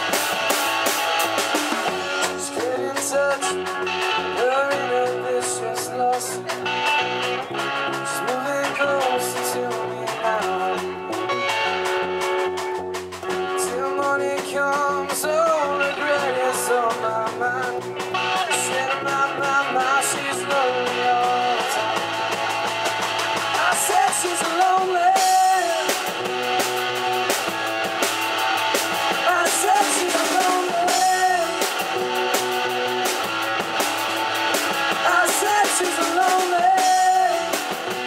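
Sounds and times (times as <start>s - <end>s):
drum kit with cymbals: 0.0s - 38.0s
electric guitars: 0.0s - 38.0s.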